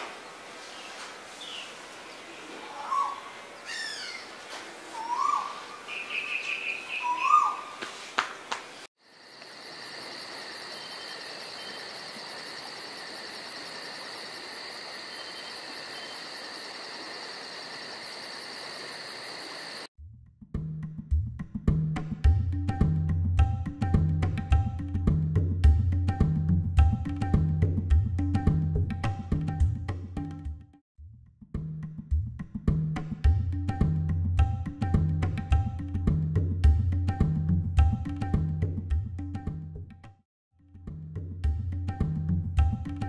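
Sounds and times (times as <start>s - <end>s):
birds chirping: 5.0s - 7.8s
insect drone high pulsing: 9.0s - 19.9s.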